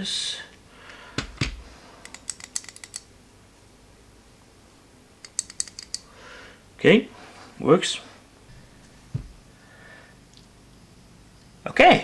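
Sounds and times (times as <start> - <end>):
small sharp metallic clicks: 2.0 - 3.1, 5.2 - 6.1.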